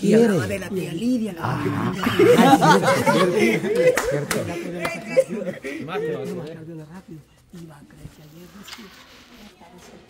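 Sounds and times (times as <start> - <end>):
men talking: 0.0 - 7.3
men laughing: 1.6 - 6.4.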